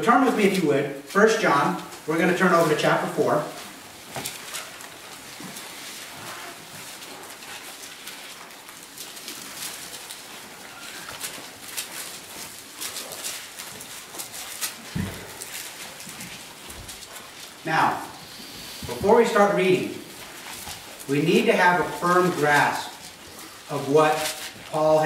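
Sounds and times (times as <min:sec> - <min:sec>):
thin pages rustling: 0:01.8 - 0:25.0.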